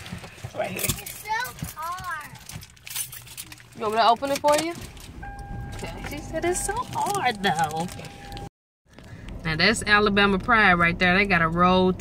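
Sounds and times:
plastic pouch crinkling: 6.5s - 8.5s.

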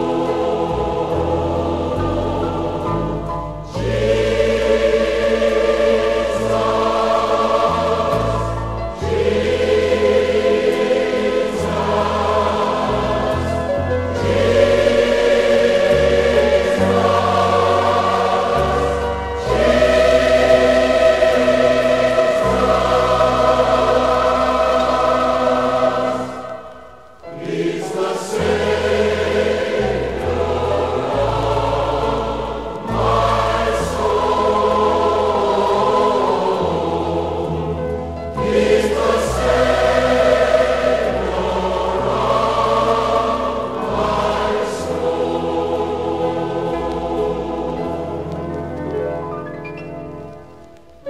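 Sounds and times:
choir singing gospel: 0.0s - 49.9s
low accompaniment with bass notes: 0.0s - 51.0s.

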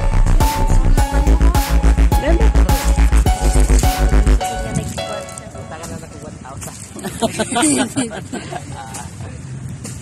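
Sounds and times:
people talking: 0.6s - 3.7s, 4.4s - 9.7s.

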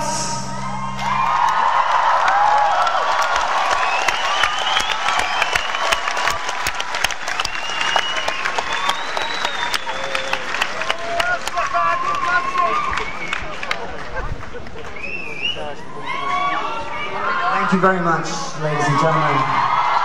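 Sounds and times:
audience applauding and cheering: 0.0s - 17.6s, 18.8s - 20.0s.

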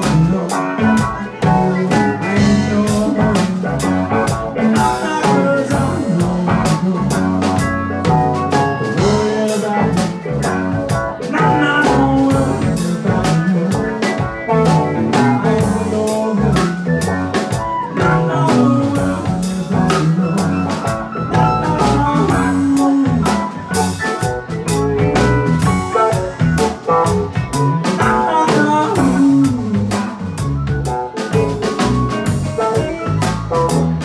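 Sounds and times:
live rock band playing: 0.0s - 34.0s.

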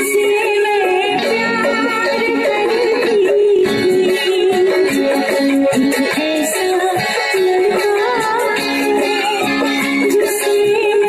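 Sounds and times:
band accompaniment: 0.0s - 11.0s
electric guitar strumming: 0.0s - 11.0s
person singing: 0.0s - 11.0s.

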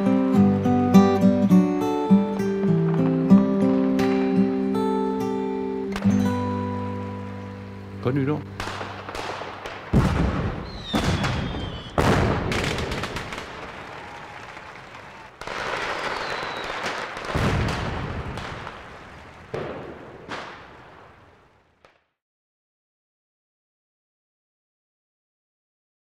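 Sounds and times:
fireworks bangs: 2.1s - 6.6s, 8.0s - 22.1s
rocket whistles: 10.0s - 17.2s.

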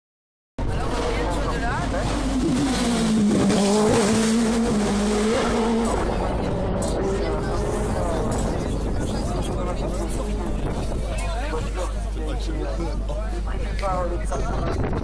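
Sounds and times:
race car engine passing: 0.6s - 11.0s.

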